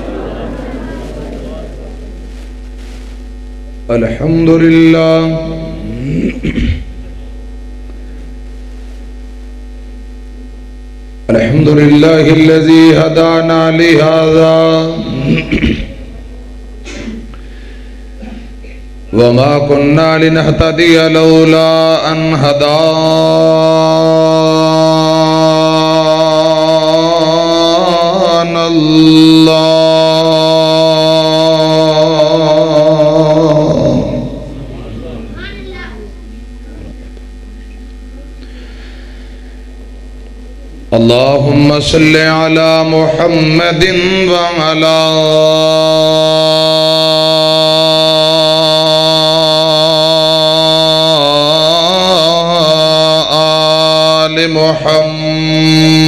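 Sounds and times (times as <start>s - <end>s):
man chanting melodically: 3.7s - 6.8s, 11.2s - 16.1s, 19.0s - 35.3s, 40.8s - 56.0s.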